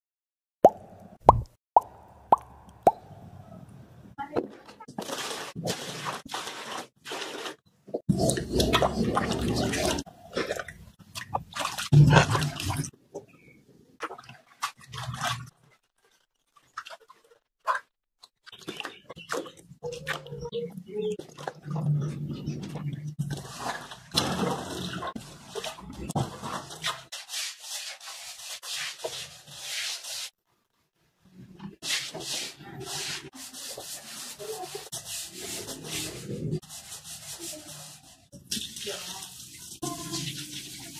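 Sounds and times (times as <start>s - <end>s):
brush scrubbing wet concrete: 4.9s - 10.1s, 18.6s - 30.4s, 31.8s - 40.9s.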